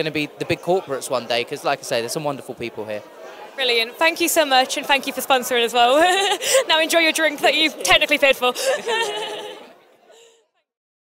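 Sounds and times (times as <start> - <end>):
woman and man laughing: 5.9 - 6.8, 8.5 - 9.7.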